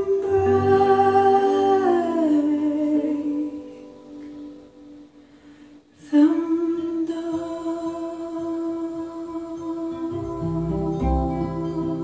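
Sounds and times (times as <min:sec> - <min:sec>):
woman singing over loudspeakers: 0:00.0 - 0:04.4, 0:06.0 - 0:12.0
soft accompaniment: 0:00.0 - 0:12.0.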